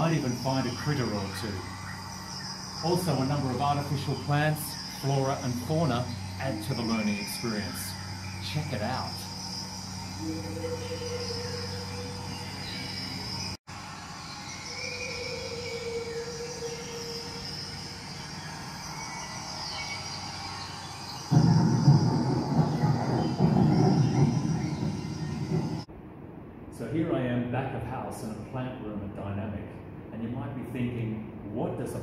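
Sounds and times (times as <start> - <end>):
insect and bird-like calls: 0.0 - 25.9
low hum: 0.0 - 32.0
loud rough rumbling noise: 2.6 - 13.6, 21.2 - 26.1.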